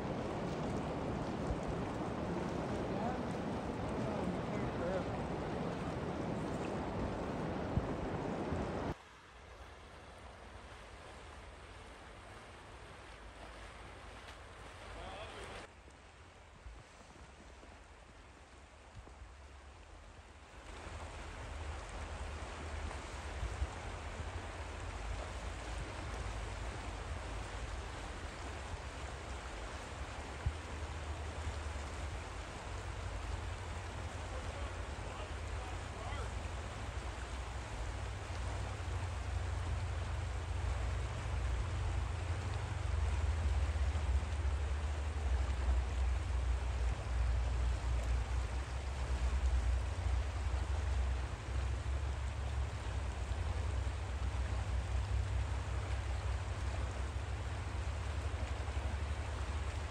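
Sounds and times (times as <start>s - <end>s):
wind rumbling on microphone: 0.0s - 9.0s, 20.5s - 59.9s
river water rushing past rocks: 0.0s - 59.9s.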